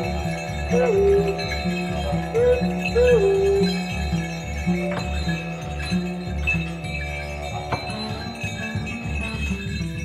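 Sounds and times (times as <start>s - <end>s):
bells and chimes jingling: 0.0s - 10.0s.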